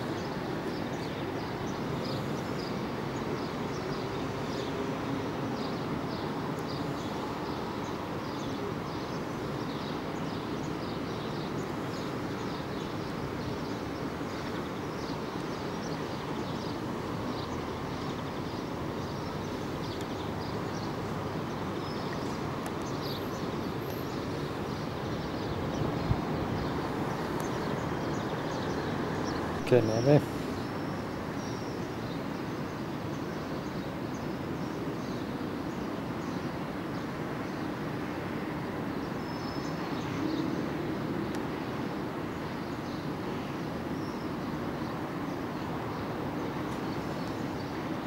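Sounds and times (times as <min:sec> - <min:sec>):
distant city traffic hum: 0:00.0 - 0:48.0.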